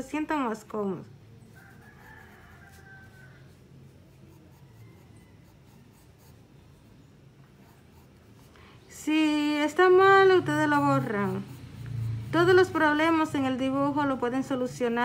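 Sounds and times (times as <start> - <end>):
pencil scratching on paper: 1.5 - 8.6, 9.9 - 13.0.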